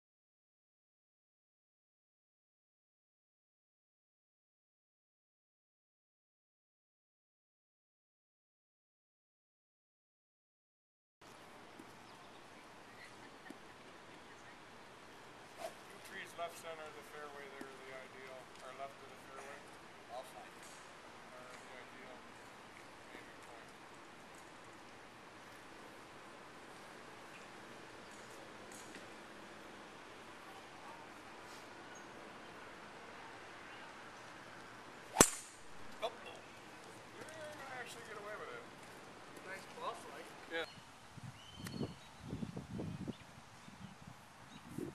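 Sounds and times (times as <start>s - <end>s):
low steady hiss: 11.2s - 44.9s
golf club striking ball: 35.1s - 36.0s.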